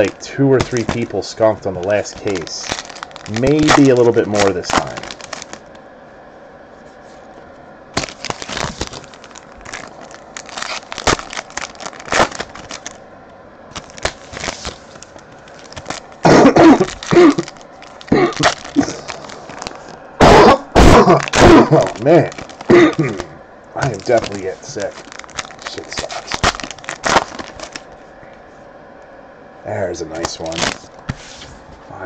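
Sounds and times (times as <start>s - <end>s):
cards being handled: 0.0s - 5.7s, 13.8s - 16.2s, 21.7s - 27.9s
foil wrappers crinkling: 0.0s - 5.8s, 8.0s - 13.0s, 13.7s - 20.0s, 21.0s - 28.0s, 30.1s - 31.4s
person coughing loudly: 16.2s - 17.5s, 18.1s - 19.0s, 20.2s - 22.0s, 22.7s - 23.3s.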